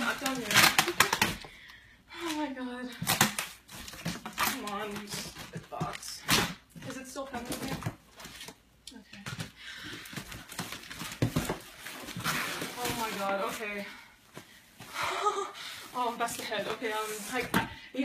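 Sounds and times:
packaging clicks and crinkles: 0:00.0 - 0:01.4.

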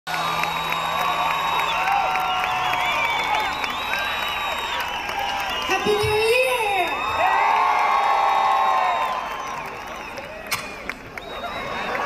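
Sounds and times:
high whoops and screams: 0:00.1 - 0:10.6
concert audience cheering: 0:00.1 - 0:12.0.

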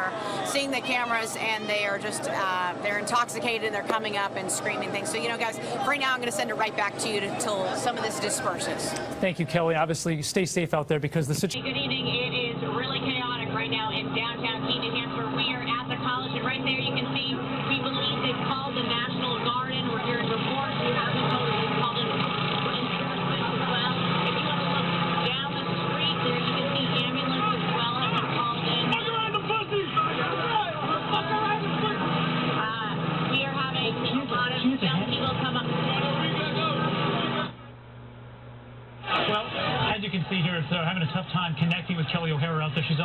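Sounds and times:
crowd shouting and yelling: 0:28.5 - 0:33.3, 0:39.0 - 0:43.0.

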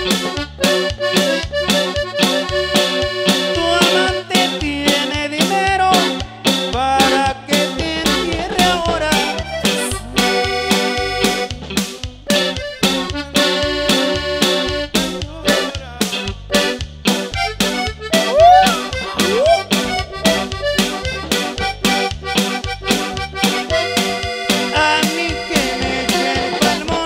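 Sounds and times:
accordion: 0:00.0 - 0:27.0
bass: 0:00.0 - 0:27.0
steady beat: 0:00.0 - 0:27.0
rising whoops: 0:18.2 - 0:19.8.

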